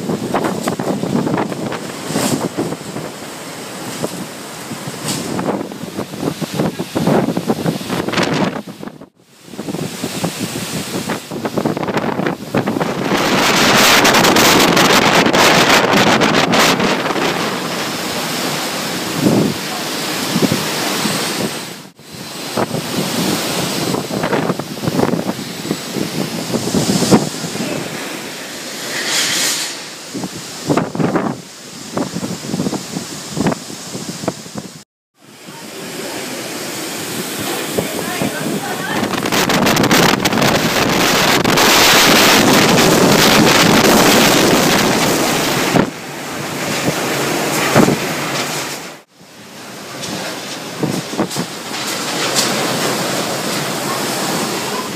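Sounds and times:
strong wind buffeting microphone: 0.0 - 49.1, 49.7 - 54.9
wind-driven rain: 0.0 - 54.9.

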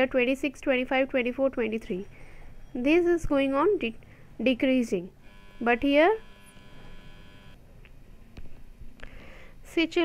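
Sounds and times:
electrical hum with high buzzing: 0.0 - 10.0.

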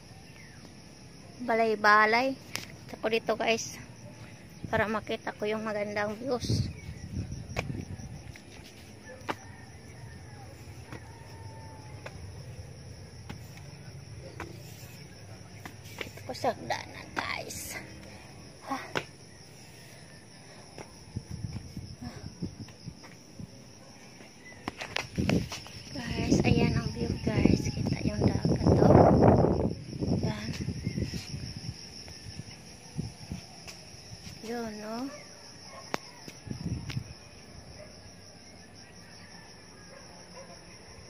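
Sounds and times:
high-pitched insect chorus: 0.0 - 41.0
low thuds near microphone: 7.0 - 8.2.

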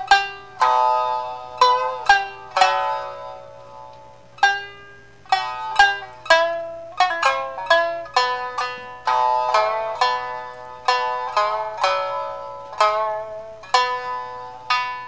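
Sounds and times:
shamisen playing: 0.0 - 15.0.

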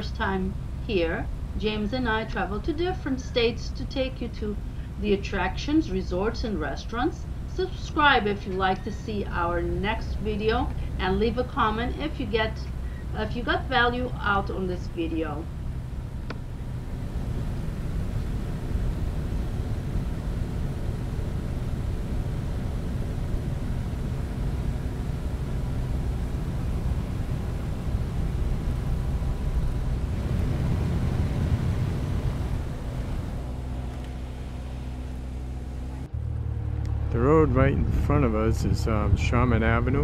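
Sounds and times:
propeller plane engine drone: 0.0 - 40.0.

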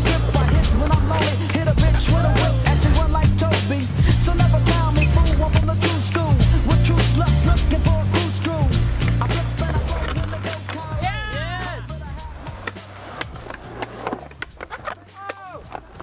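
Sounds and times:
background music: 0.0 - 16.0
skateboard wheels rolling on concrete: 0.0 - 16.0
skateboard clacks and knocks: 0.1 - 2.0, 9.0 - 11.1, 12.3 - 16.0.

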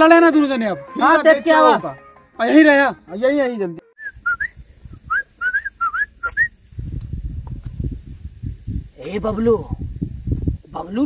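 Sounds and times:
person whistling: 4.0 - 6.5.

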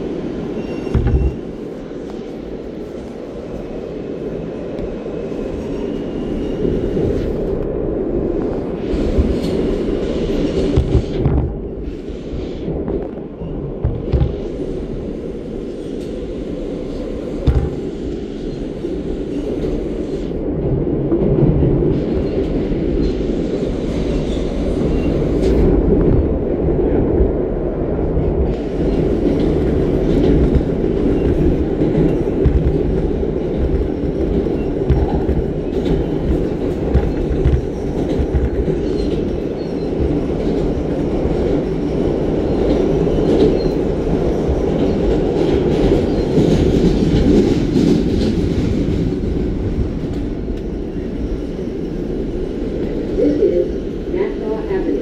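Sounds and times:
train wheels rumbling on rail: 0.0 - 55.0.

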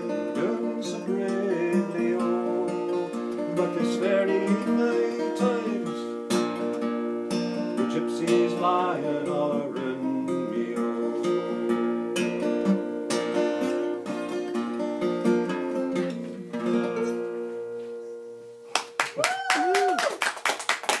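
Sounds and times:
acoustic guitar fingerpicking: 0.0 - 19.0
applause: 18.7 - 21.0.

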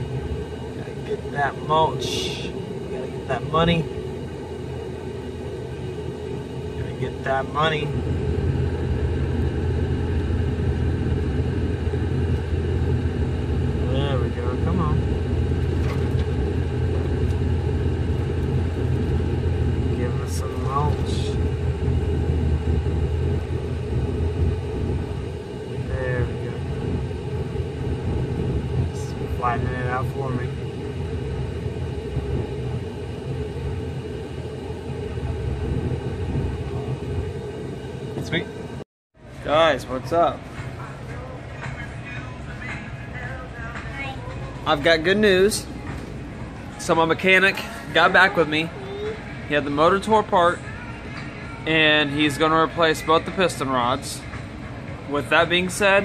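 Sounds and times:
engine rumble inside vehicle: 0.0 - 56.0.

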